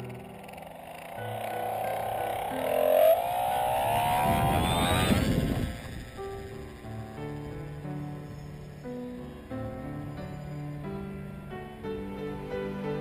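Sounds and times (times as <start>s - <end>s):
soft piano music: 0.0s - 4.9s, 5.6s - 13.0s
electric motor whining: 0.0s - 9.0s
wind rushing: 0.6s - 6.8s.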